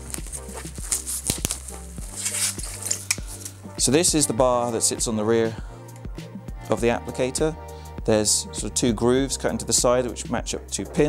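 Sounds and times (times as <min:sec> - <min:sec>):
bubble wrap crinkling: 0:00.0 - 0:03.7.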